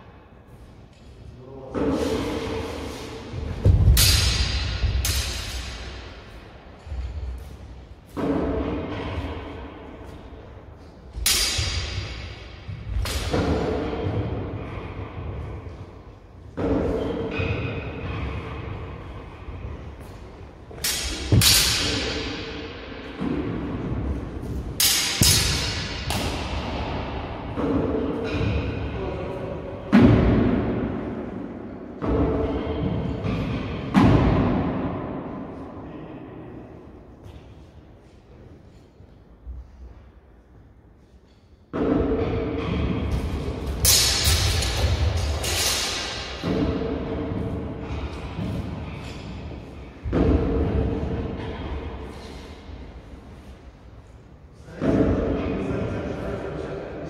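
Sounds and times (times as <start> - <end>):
steel swords clashing: 3.9 - 6.2, 11.2 - 13.9, 20.7 - 22.8, 24.8 - 26.8, 43.7 - 46.9.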